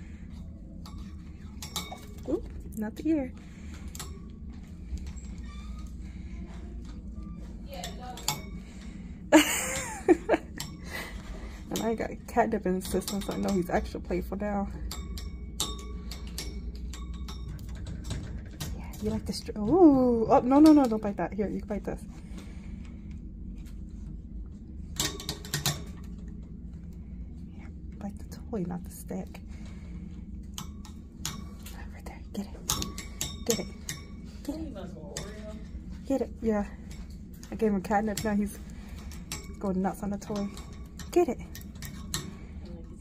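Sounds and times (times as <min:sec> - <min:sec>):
low room hum: 0:00.0 - 0:43.0
rod clinking on metal bars: 0:00.8 - 0:02.4, 0:32.5 - 0:35.8, 0:36.9 - 0:42.5.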